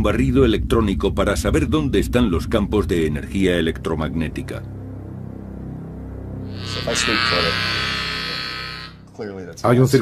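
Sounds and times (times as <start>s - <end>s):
loud electrical buzz: 6.5s - 9.1s.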